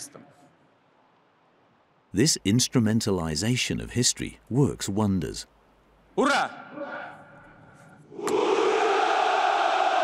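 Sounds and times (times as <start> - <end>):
soldiers shouting in unison: 8.1 - 10.0.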